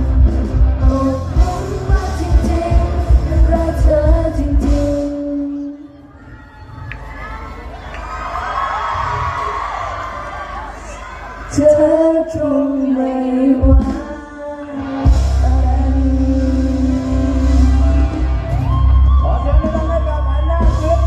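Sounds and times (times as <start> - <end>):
live pop band playing: 0.0 - 6.0, 11.5 - 21.0
crowd cheering and screaming: 5.4 - 13.1, 13.8 - 21.0.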